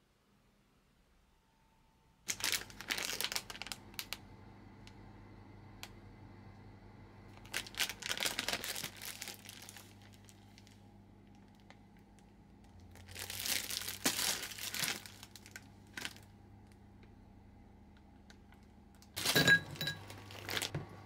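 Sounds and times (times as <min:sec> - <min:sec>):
plastic packaging crinkling: 0:02.3 - 0:04.2, 0:07.3 - 0:16.3, 0:18.2 - 0:20.9.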